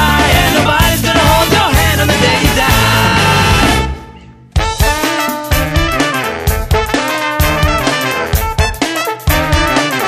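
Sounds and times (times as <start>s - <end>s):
ska-punk band with horns: 0.0s - 10.0s.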